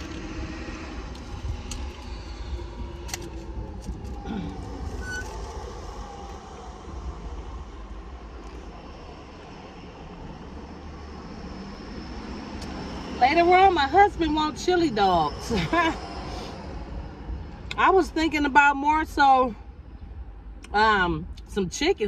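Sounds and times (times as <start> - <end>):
road traffic rumble inside car: 0.0 - 22.0.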